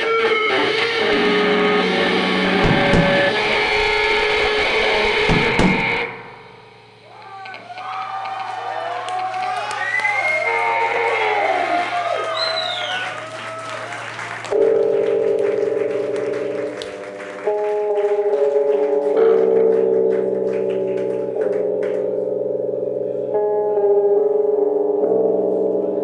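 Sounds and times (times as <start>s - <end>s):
lap steel guitar slide tones: 0.0s - 6.2s
lap steel guitar chord: 0.0s - 7.1s
low hum: 1.6s - 7.4s.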